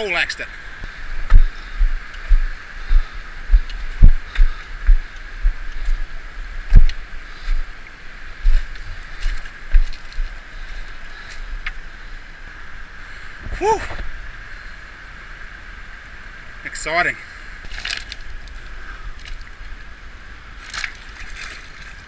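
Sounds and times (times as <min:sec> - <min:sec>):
footsteps and camera bumps: 0:01.2 - 0:07.7, 0:08.4 - 0:10.4
fast river rushing: 0:04.6 - 0:22.0.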